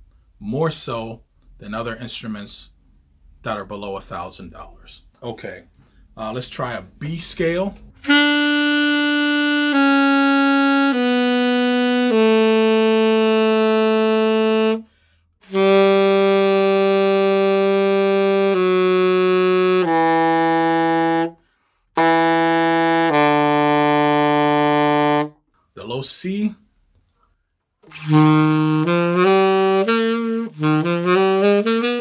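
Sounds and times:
alto saxophone long notes: 0:08.0 - 0:25.4, 0:27.8 - 0:32.0.

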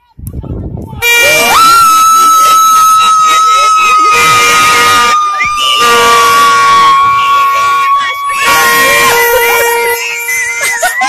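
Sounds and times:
plastic fan horn blown: 0:01.0 - 0:01.8, 0:02.4 - 0:11.0
spectators shouting: 0:01.0 - 0:11.0
lower horn note droning: 0:02.5 - 0:10.7.

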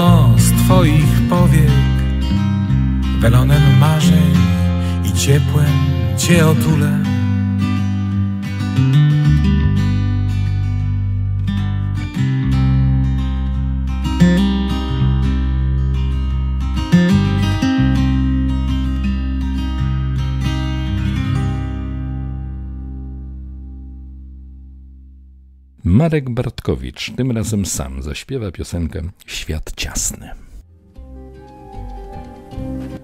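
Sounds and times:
acoustic guitar picking: 0:00.0 - 0:25.0.

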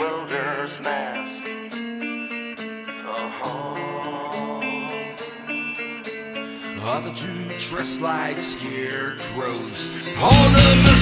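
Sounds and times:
punk band music with guitars: 0:00.0 - 0:11.0.

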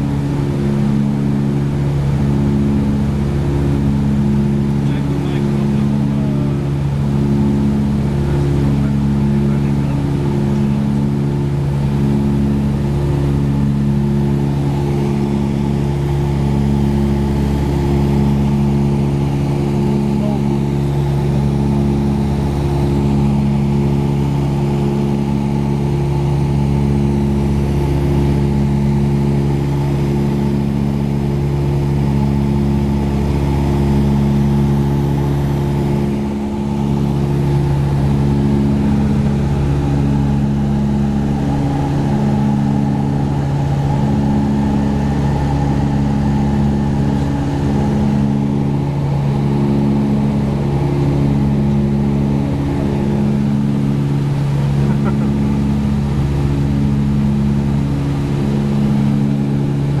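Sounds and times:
aircraft cabin engine drone: 0:00.0 - 1:00.0
propellers pulsing out of sync: 0:00.0 - 1:00.0.

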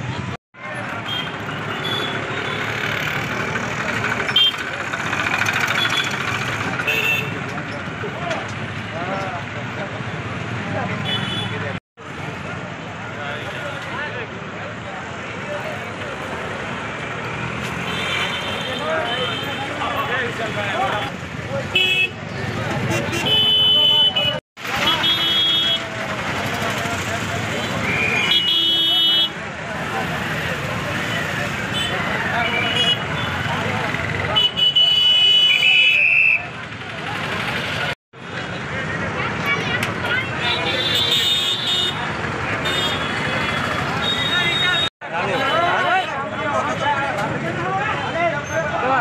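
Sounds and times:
crowd of voices talking: 0:00.0 - 0:49.0
street traffic: 0:00.0 - 0:49.0
vehicle horns tooting: 0:01.0 - 0:02.8, 0:04.2 - 0:04.7, 0:05.6 - 0:07.5, 0:11.0 - 0:11.8, 0:17.7 - 0:22.2, 0:22.8 - 0:26.0, 0:27.5 - 0:29.4, 0:31.1 - 0:36.5, 0:40.1 - 0:46.2.

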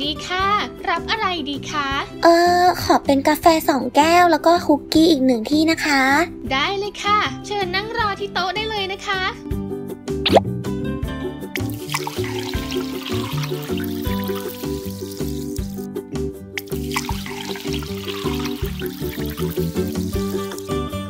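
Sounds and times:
background music: 0:00.0 - 0:21.0
coffee pouring into plastic cup: 0:11.6 - 0:15.9, 0:16.6 - 0:20.8.

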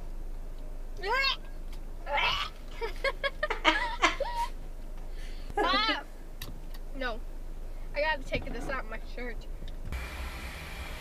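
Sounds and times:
high-pitched squeal: 0:10.0 - 0:11.0.

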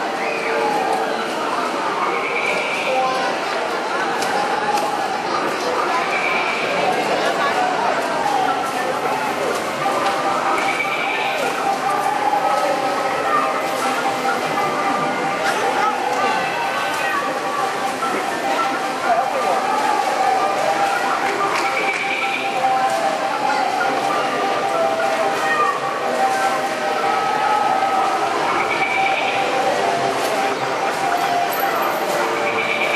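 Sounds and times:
crowd chattering: 0:00.0 - 0:32.9.

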